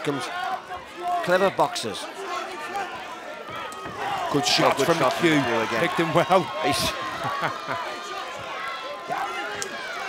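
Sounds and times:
arena crowd murmur: 0:00.0 - 0:10.0.

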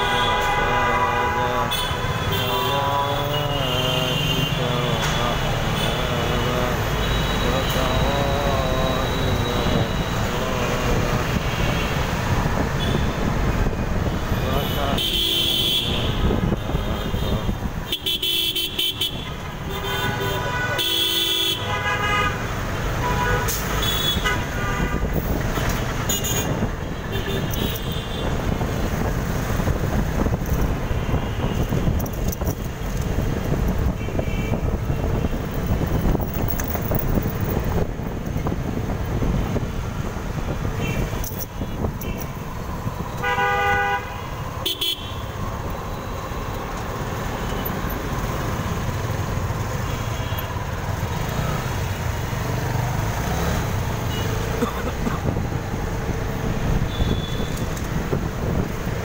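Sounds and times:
vehicle horns honking: 0:00.0 - 0:13.3, 0:14.3 - 0:25.2, 0:26.0 - 0:28.6, 0:33.8 - 0:36.3, 0:40.7 - 0:46.2, 0:53.9 - 0:55.4, 0:56.7 - 0:57.9
road traffic engines and tyres: 0:00.0 - 0:59.0.

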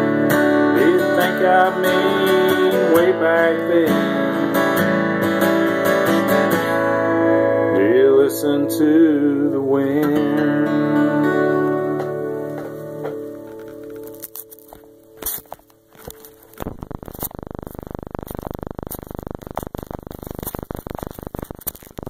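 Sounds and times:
acoustic guitar chord ringing: 0:00.0 - 0:16.6
microphone handling crackling: 0:11.2 - 0:22.0.

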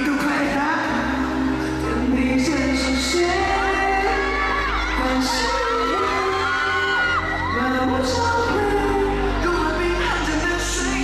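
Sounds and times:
amplified song over sound system: 0:00.0 - 0:11.0
crowd screaming and whooping: 0:00.0 - 0:11.0.

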